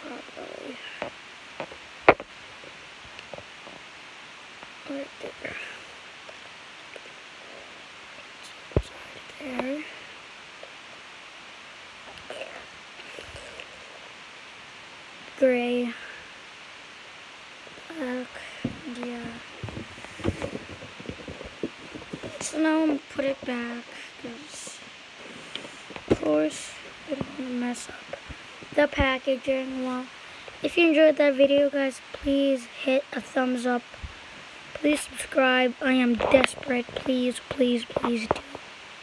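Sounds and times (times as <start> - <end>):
light rustling: 17.6 - 24.1.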